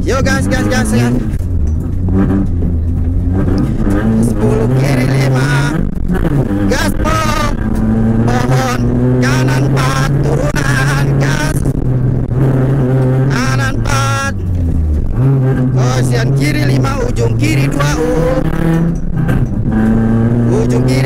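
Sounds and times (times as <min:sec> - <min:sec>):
rally car engine revving hard: 0:00.0 - 0:21.0.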